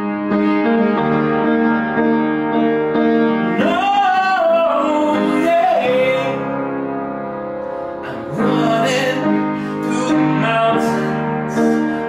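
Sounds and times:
upright piano chords: 0.0s - 12.0s
man singing: 3.4s - 6.6s, 8.0s - 12.0s.

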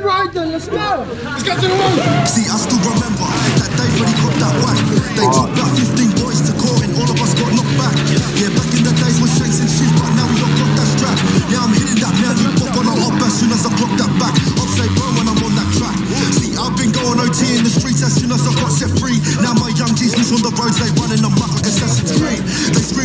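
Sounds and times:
rapping over a beat: 0.0s - 23.0s
deep repeating bass line: 1.5s - 23.0s.

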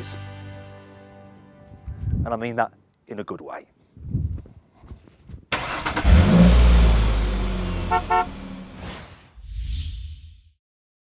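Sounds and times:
sudden rush of noise: 6.8s - 10.5s
short horn toots: 7.8s - 8.8s.

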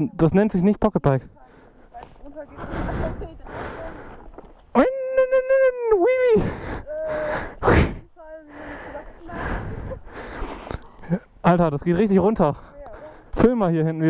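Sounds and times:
breathy noises: 1.2s - 11.4s, 12.4s - 13.4s.

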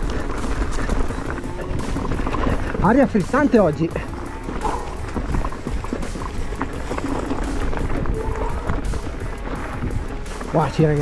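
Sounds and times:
background music: 0.0s - 11.0s
bike rattling: 0.0s - 11.0s
bike tyres rumbling on stony trail: 0.0s - 11.0s
wind on microphone: 3.9s - 10.5s.

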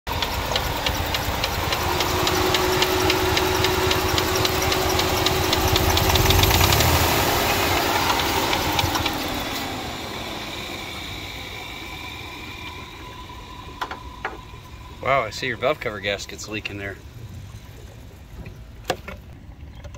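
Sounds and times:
engine idling rough with knock: 0.0s - 19.9s.

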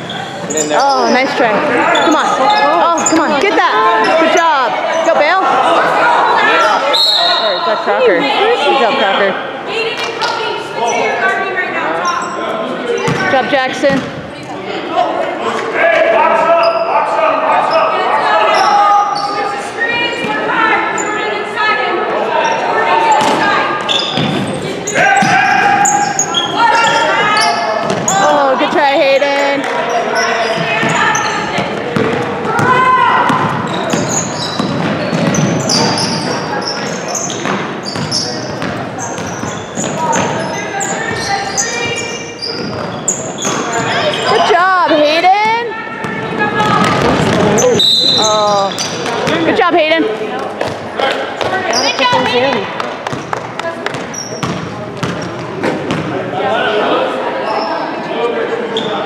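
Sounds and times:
echoing voices in gym: 0.0s - 59.0s.

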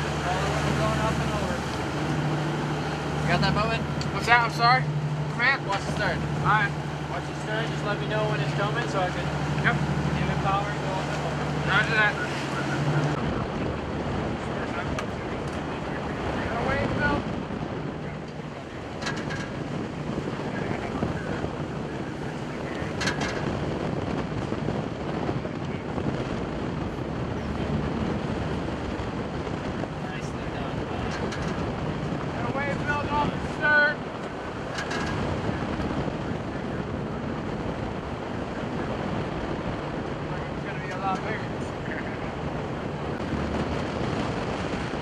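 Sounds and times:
boat engine drone: 0.0s - 45.0s
sea noise: 0.0s - 45.0s
wind buffeting microphone: 0.0s - 45.0s.

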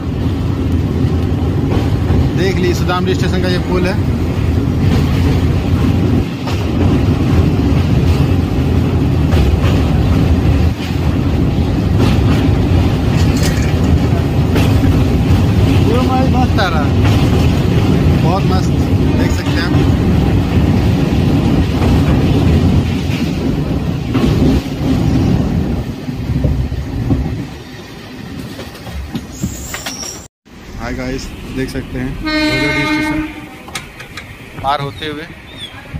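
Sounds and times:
train wheels rumbling on rails: 0.0s - 35.9s.

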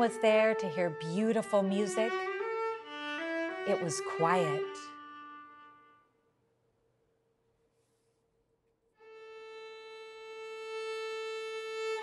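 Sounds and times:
held viola note: 0.0s - 6.2s.

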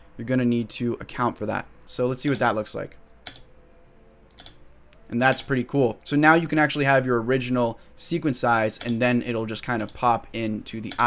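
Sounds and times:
faint steady hum: 0.0s - 11.0s
computer keyboard keystrokes: 3.2s - 3.5s, 4.3s - 4.6s.

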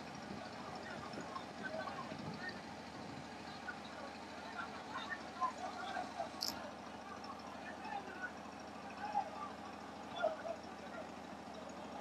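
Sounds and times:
distant crowd voices and shouts: 0.0s - 12.0s
vehicle engine idling: 0.0s - 12.0s.

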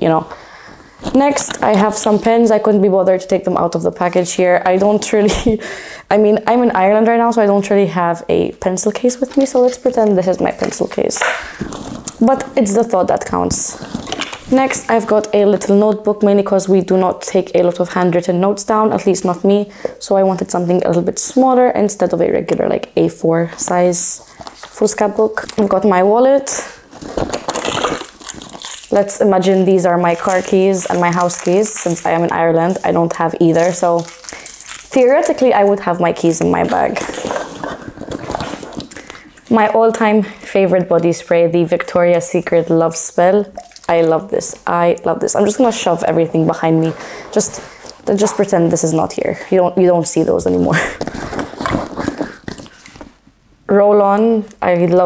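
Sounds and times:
hand rummaging in handbag: 9.0s - 15.0s, 26.9s - 39.4s, 50.5s - 53.2s.

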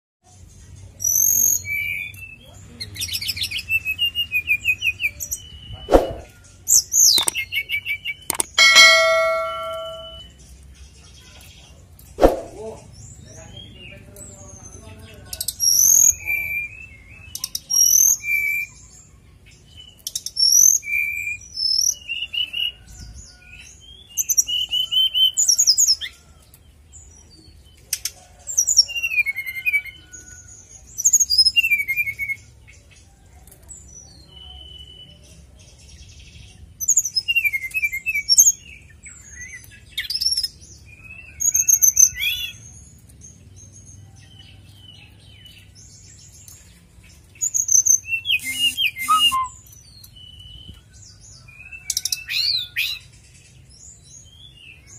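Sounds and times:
songbird chirping and whistling: 3.2s - 10.3s, 47.4s - 50.8s.

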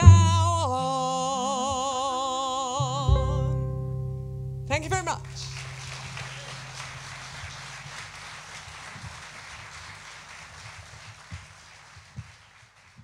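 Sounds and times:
band's low chord ringing: 3.0s - 7.8s
audience applauding: 5.4s - 13.0s.

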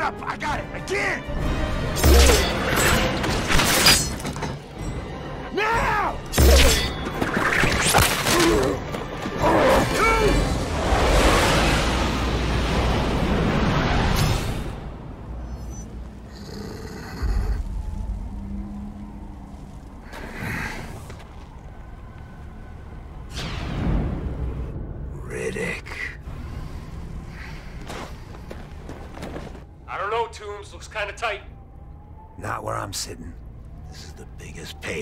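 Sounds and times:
film soundtrack music: 0.0s - 35.0s
rushing and rumbling effects: 8.8s - 30.7s.

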